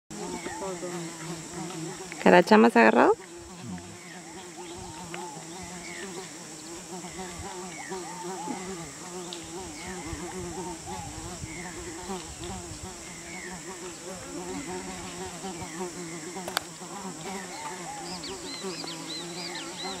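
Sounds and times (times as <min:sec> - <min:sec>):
high insect drone: 0:00.1 - 0:20.0
insects buzzing: 0:00.1 - 0:20.0
sharp click: 0:16.5 - 0:16.7.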